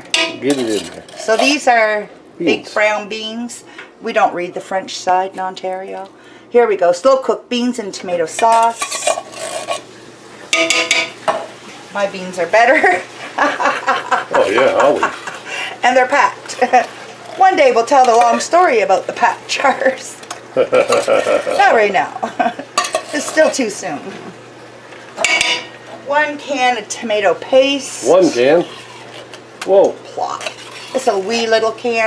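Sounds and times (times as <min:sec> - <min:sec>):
metal spoon clinking on pot: 0:00.0 - 0:01.6, 0:10.6 - 0:11.2, 0:22.8 - 0:23.5, 0:25.2 - 0:25.7.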